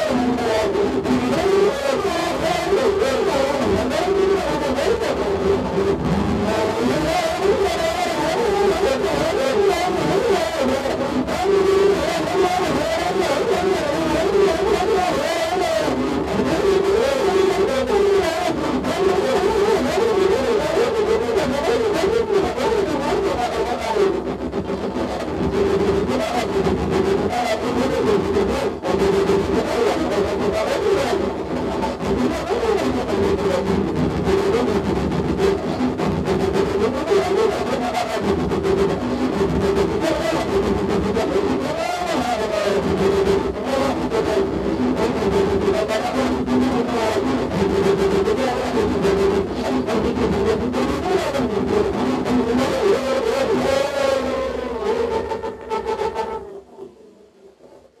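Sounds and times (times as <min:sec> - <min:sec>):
distorted drone from glass pane: 0:00.0 - 0:58.0.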